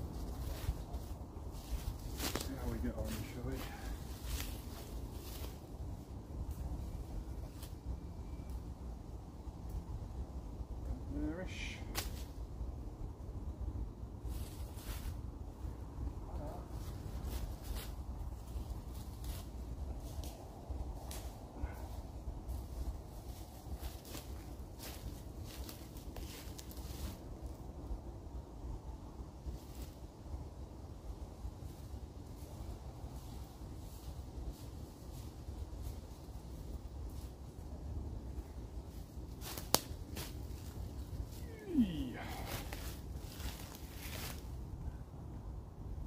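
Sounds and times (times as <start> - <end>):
dry leaves crackling: 0.0 - 8.5, 14.2 - 15.7, 16.3 - 27.6, 31.6 - 44.8
wind rumbling on microphone: 0.0 - 46.0.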